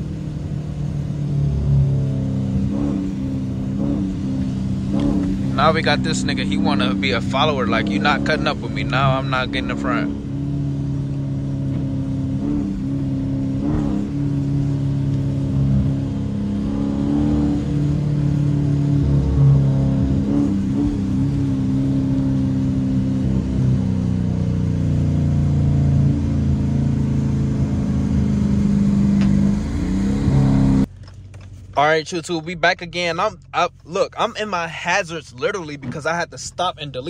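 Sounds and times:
car engine drone: 0.0 - 37.0.

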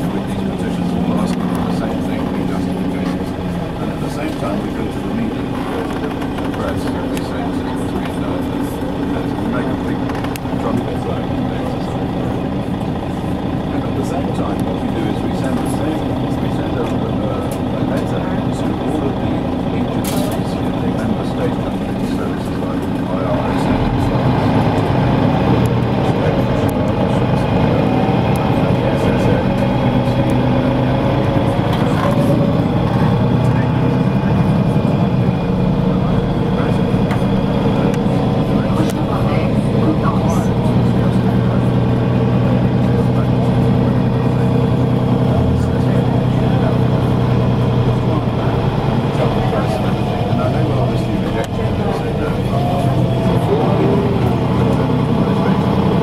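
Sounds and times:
city traffic: 0.0 - 56.0
indistinct voices: 0.0 - 56.0
vehicle engine running: 0.0 - 56.0.

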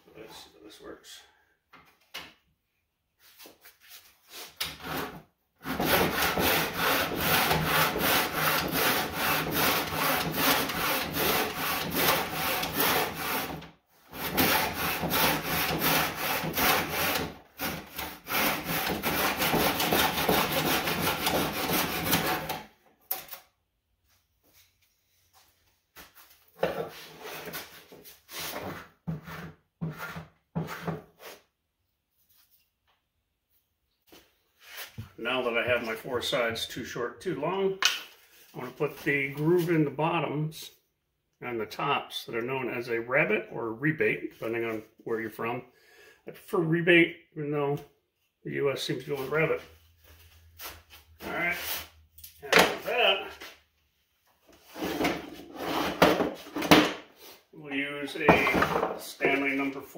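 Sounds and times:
handsaw cutting wood: 4.6 - 22.7
knocks and handling sounds: 24.0 - 31.2, 58.3 - 59.8.

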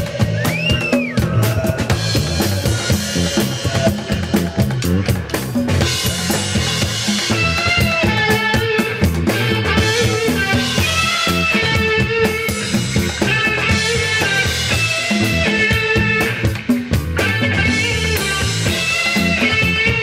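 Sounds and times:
bass line: 0.0 - 20.0
drum kit bass drum and snare: 0.0 - 20.0
live reggae band playing: 0.0 - 20.0.

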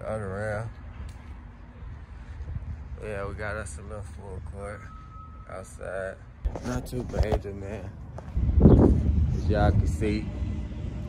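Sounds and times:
outdoor background rumble: 5.9 - 11.0.

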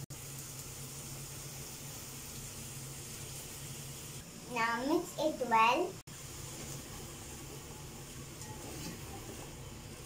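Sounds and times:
food sizzling in a pot: 0.0 - 10.0.

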